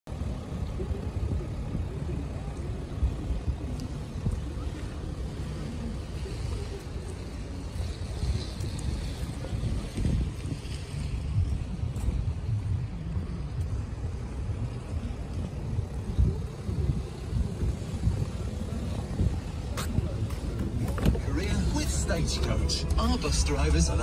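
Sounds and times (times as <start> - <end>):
wind buffeting microphone: 0.1 - 24.0.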